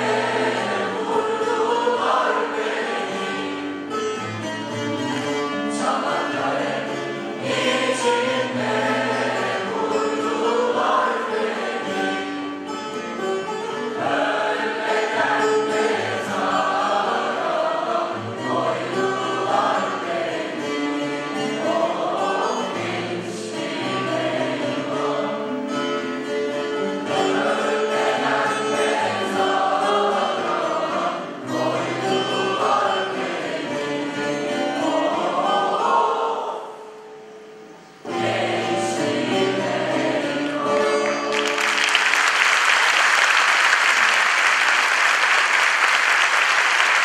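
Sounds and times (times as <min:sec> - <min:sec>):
choir singing with accompaniment: 0:00.0 - 0:43.2.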